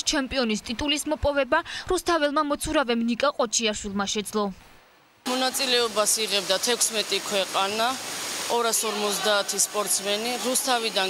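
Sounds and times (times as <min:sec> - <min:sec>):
woman speaking: 0:00.0 - 0:04.6
water splashing in pool: 0:05.3 - 0:11.0.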